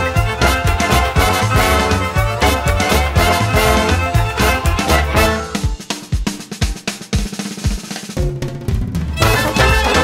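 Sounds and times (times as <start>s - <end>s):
swing band playing: 0.0s - 10.0s
snare and bass drum hits: 0.2s - 10.0s.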